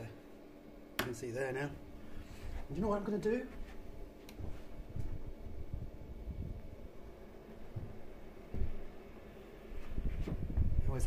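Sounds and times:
fan heater blowing hiss: 0.0 - 11.0.

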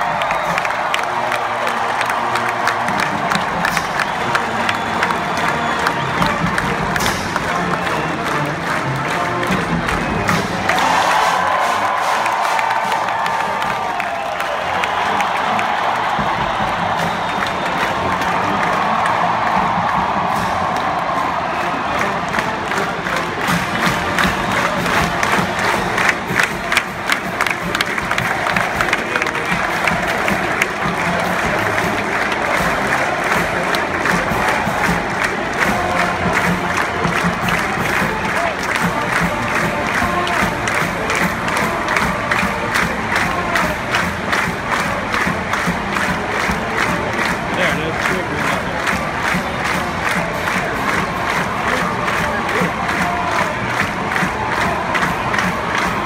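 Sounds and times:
crowd cheering and shouting: 0.0 - 56.0
marching band playing: 0.0 - 56.0.

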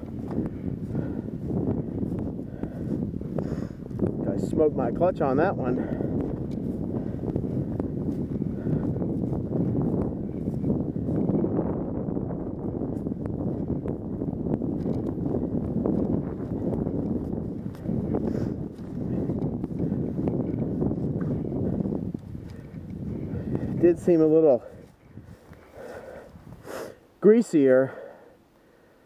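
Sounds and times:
wind noise on microphone: 0.0 - 29.0
dirt bike engine running: 5.8 - 23.8.

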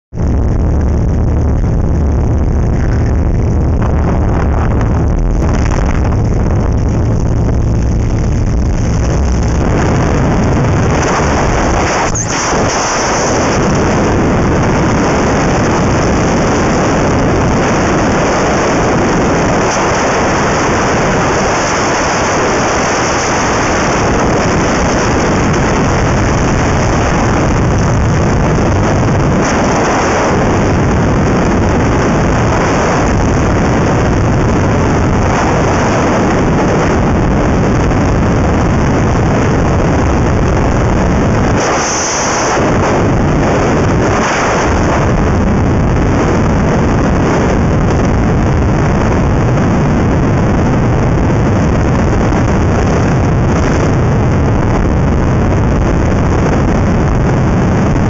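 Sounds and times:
wind rushing over microphone: 0.0 - 58.0
plane engine droning: 0.1 - 58.0.

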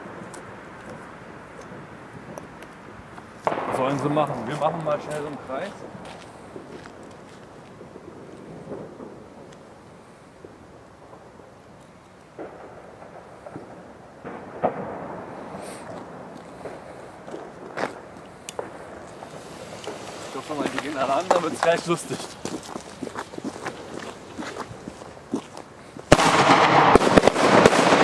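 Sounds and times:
low background hiss: 0.0 - 28.0
firecracker bangs: 3.4 - 6.8, 12.4 - 22.6, 26.1 - 28.0.

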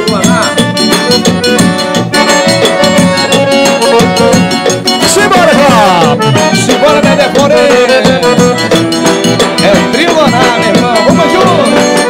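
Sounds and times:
accordion: 0.0 - 12.0
acoustic guitar: 0.0 - 12.0
drum beat: 0.0 - 12.0.

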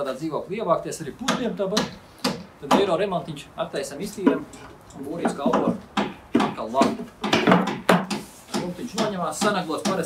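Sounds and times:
wooden boards knocking: 4.2 - 4.5, 5.2 - 10.0
man's voice: 8.6 - 10.0.

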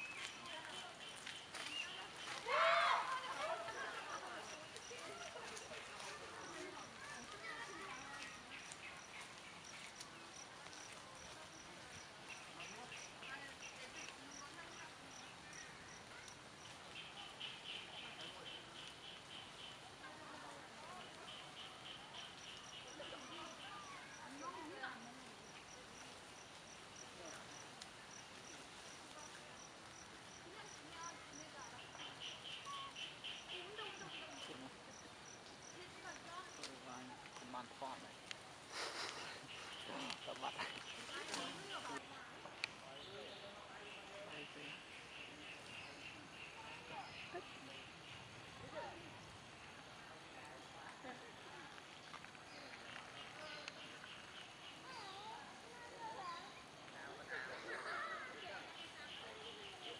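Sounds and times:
faint insect chirping: 0.0 - 59.9.

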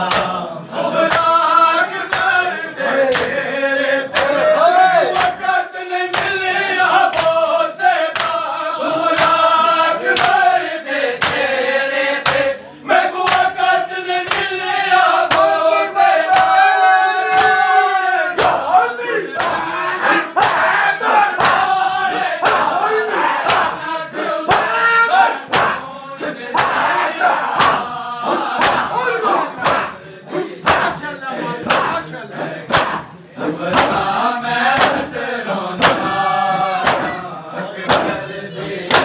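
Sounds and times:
hand slaps on bare chests: 0.0 - 0.4, 3.1 - 3.4, 4.1 - 4.4, 5.1 - 5.5, 6.1 - 6.4, 7.1 - 7.4, 8.1 - 8.4, 9.1 - 9.4, 10.2 - 10.4, 11.2 - 11.5, 12.2 - 12.5, 13.2 - 13.6, 14.2 - 14.5, 15.3 - 15.6, 16.3 - 16.6, 18.4 - 18.6, 19.4 - 19.6, 21.4 - 21.7, 23.4 - 23.8, 24.5 - 24.7, 25.5 - 25.8, 26.6 - 26.9, 27.5 - 27.9, 28.6 - 28.9, 29.6 - 29.9, 30.6 - 31.0, 31.6 - 32.0, 32.7 - 33.0, 33.7 - 34.1, 34.7 - 35.1, 35.8 - 36.2, 36.8 - 37.2, 37.9 - 38.2
men chanting and shouting: 0.0 - 39.0
men striking their chests: 18.4 - 39.0.

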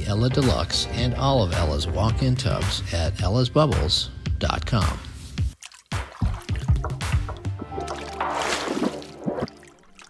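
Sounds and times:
music: 0.0 - 10.0
water drip sound effects: 5.5 - 10.0.

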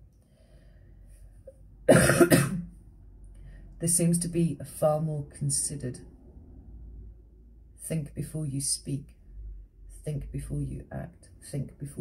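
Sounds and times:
woman coughing: 1.9 - 2.7.

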